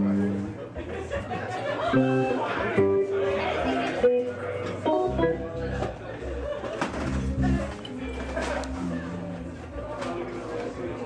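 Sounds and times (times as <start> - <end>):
plucked guitar notes: 1.9 - 6.0, 7.0 - 7.8
low bass notes: 4.8 - 7.8, 8.6 - 9.8.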